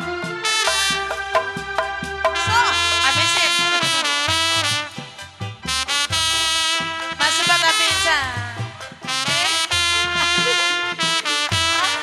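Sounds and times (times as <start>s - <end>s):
sliding melody line: 0.0s - 12.0s
low drum hits: 0.7s - 3.3s
held bass note: 0.7s - 3.6s.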